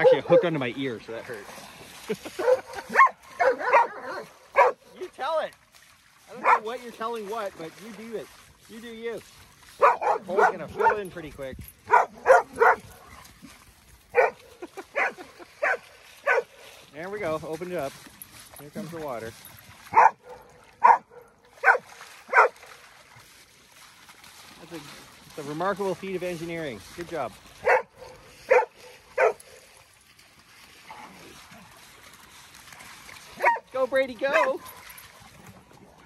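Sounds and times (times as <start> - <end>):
dog barking: 0.0 - 0.5, 2.4 - 4.9, 6.4 - 6.7, 9.8 - 11.1, 11.9 - 13.2, 14.1 - 16.6, 19.9 - 22.6, 27.6 - 29.5, 33.4 - 33.7, 34.3 - 34.8.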